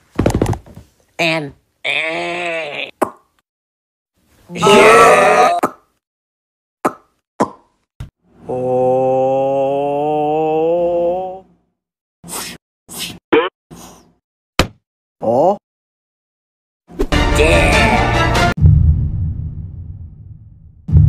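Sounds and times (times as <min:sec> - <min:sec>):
cartoon strained cry: 0:01.8 - 0:03.0, 0:04.5 - 0:05.7.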